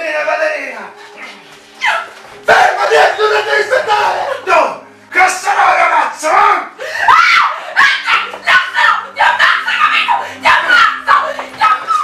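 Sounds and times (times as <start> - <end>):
high-pitched shouts and cries: 1.8 - 4.5, 5.2 - 12.0.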